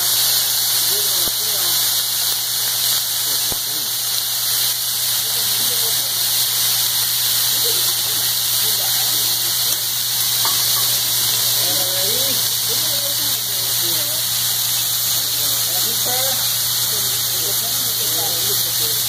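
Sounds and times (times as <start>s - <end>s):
restaurant chatter: 0.0s - 19.0s
vegetables sizzling on a griddle: 0.0s - 19.0s.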